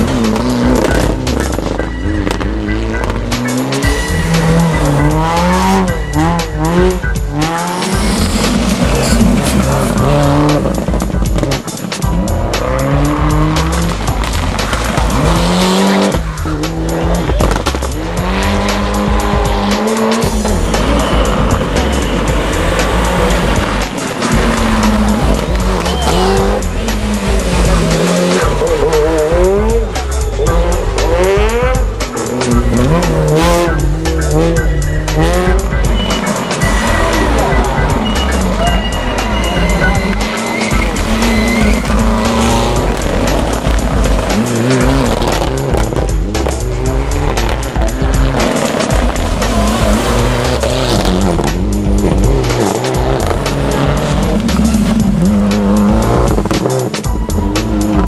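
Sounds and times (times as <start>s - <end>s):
rally car engines revving: 0.0s - 58.0s
tyres squealing on tarmac: 20.2s - 31.1s, 31.7s - 58.0s.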